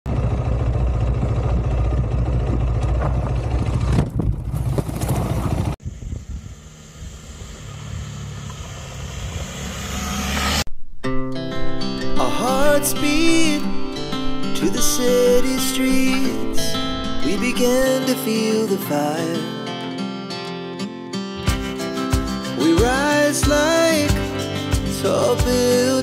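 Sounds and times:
motorcycle engine running: 0.1 - 10.6
guitar music: 10.8 - 26.0.

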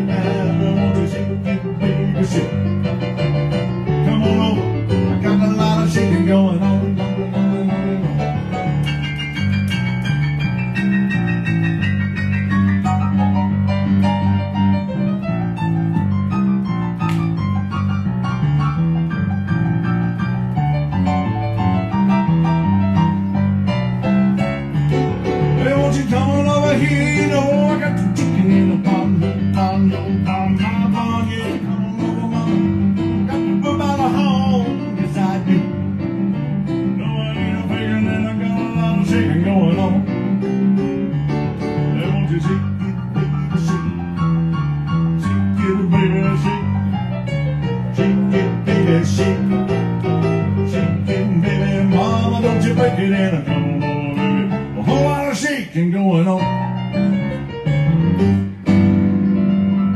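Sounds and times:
rock and roll piano: 0.0 - 59.9.

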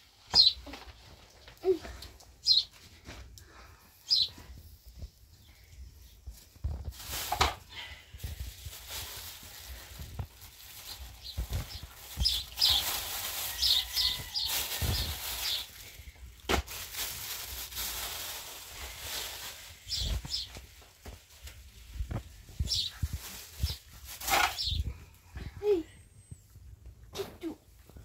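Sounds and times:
plastic bag crinkling: 6.7 - 24.8.

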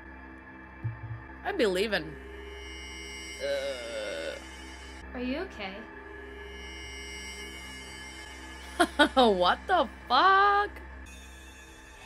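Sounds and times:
ominous horror film score: 0.0 - 12.0
low hum: 0.8 - 3.5.

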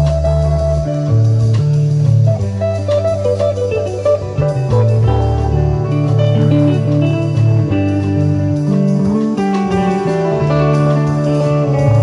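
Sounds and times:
bass line: 0.0 - 12.0
clean electric guitar melody: 0.0 - 12.0
drum kit: 0.0 - 12.0
keyboard: 0.0 - 12.0.

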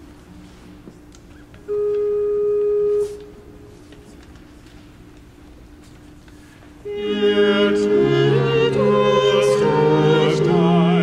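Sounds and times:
sustained organ note: 1.7 - 4.0, 6.8 - 11.0.

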